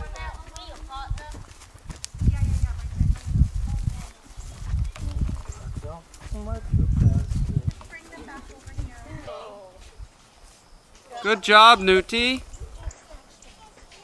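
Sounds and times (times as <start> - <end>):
hooves on grass: 0.0 - 14.0
faint voices: 2.2 - 10.2.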